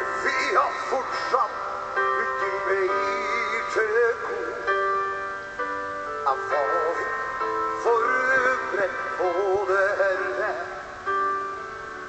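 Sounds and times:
man singing with vibrato: 0.0s - 5.0s, 6.2s - 11.3s
sustained keyboard chords: 0.0s - 12.0s.

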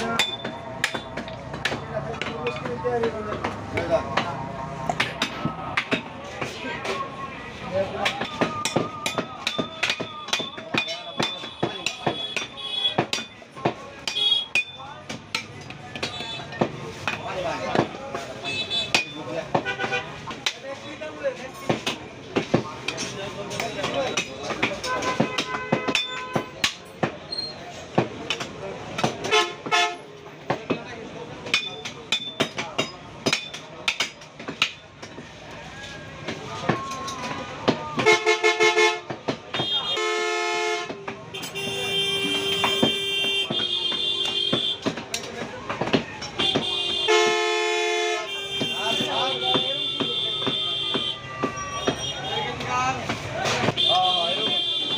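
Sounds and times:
knife chopping meat and bone: 0.0s - 6.9s, 8.0s - 20.7s, 21.6s - 27.2s, 27.9s - 29.8s, 30.4s - 35.3s, 42.6s - 47.1s
market voices: 0.0s - 54.9s
vehicle horns: 14.1s - 14.6s, 18.4s - 20.2s, 24.8s - 26.8s, 29.2s - 30.1s, 38.0s - 45.0s, 46.3s - 52.6s, 53.6s - 54.9s.

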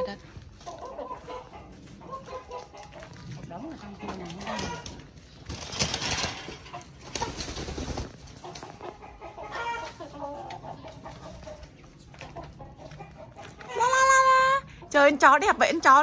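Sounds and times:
chicken calls: 0.0s - 3.2s, 3.8s - 15.0s
chickens clucking: 0.0s - 16.0s.

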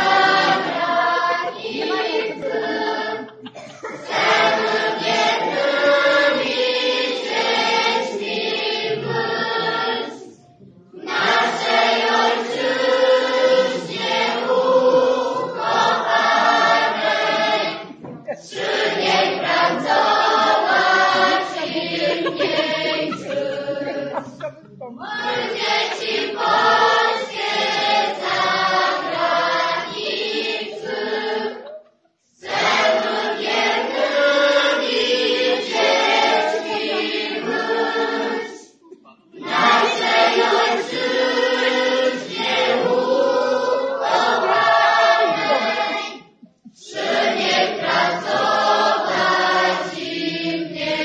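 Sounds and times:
children's choir singing: 0.0s - 51.0s.

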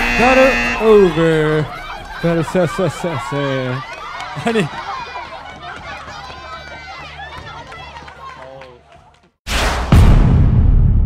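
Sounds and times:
women chattering excitedly: 1.6s - 8.4s.

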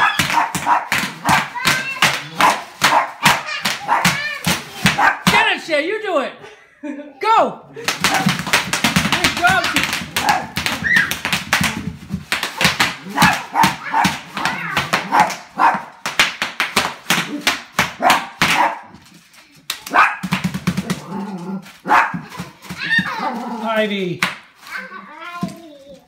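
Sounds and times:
bubble wrap popping: 0.0s - 5.2s, 7.8s - 26.0s
small dog barking: 15.1s - 15.9s, 19.9s - 20.3s, 21.8s - 22.2s.

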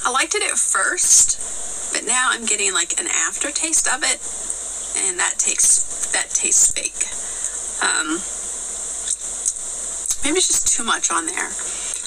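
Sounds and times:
high-pitched background hiss: 0.0s - 12.0s.

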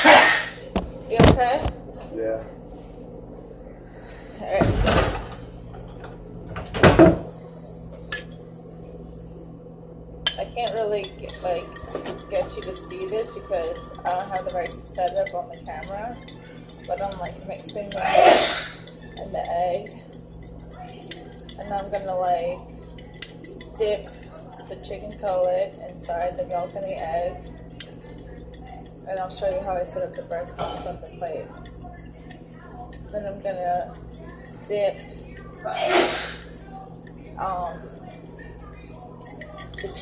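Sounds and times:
utensil clinking in bowl: 10.3s - 38.5s, 39.1s - 40.0s.

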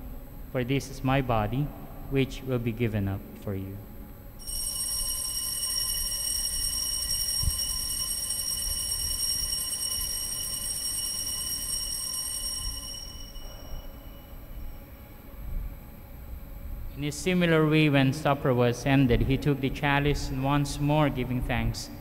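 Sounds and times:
altar bells ringing: 4.4s - 15.2s.

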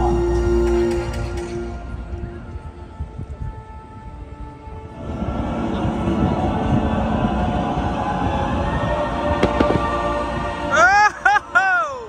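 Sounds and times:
sharp bangs: 9.4s - 10.4s.

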